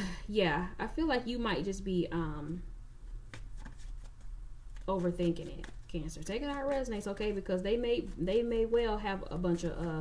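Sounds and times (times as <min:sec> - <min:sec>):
cards being shuffled: 0:03.1 - 0:07.4.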